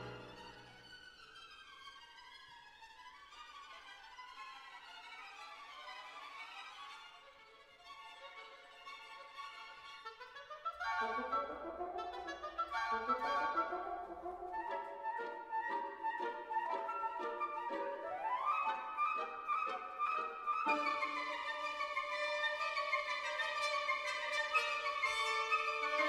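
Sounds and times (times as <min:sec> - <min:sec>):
pizzicato violins: 0:00.0 - 0:26.0
woodwinds trilling and running: 0:10.2 - 0:26.0.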